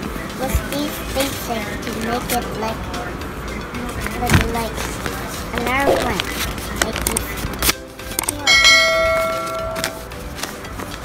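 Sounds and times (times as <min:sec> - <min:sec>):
bright bell ding: 0:08.5 - 0:09.9.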